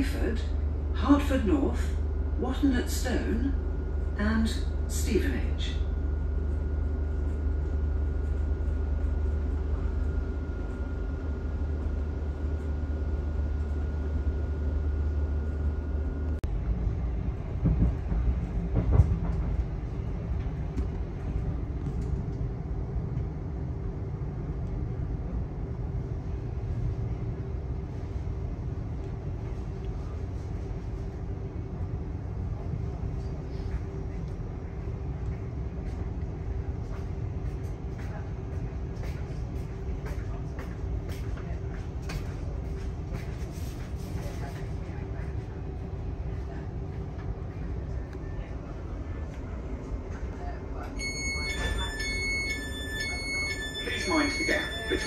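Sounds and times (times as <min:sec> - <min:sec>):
steady hum: 0:00.0 - 0:17.7
train wheels rumbling on rail: 0:16.4 - 0:55.0.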